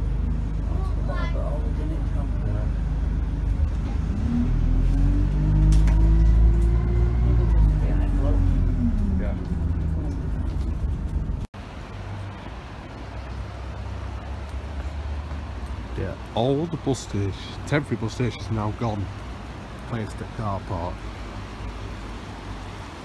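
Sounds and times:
bus engine from inside cabin: 0:00.0 - 0:23.0
outdoor background noise: 0:00.0 - 0:23.0.

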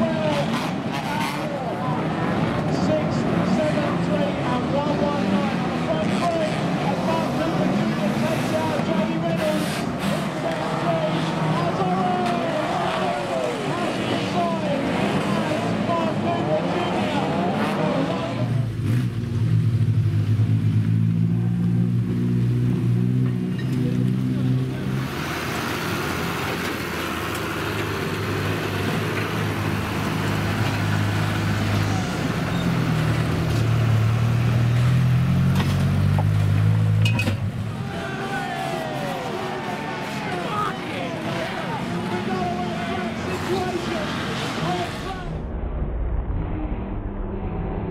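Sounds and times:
race car engines revving: 0:00.0 - 0:45.6
tractor engine running steadily: 0:25.2 - 0:34.0.

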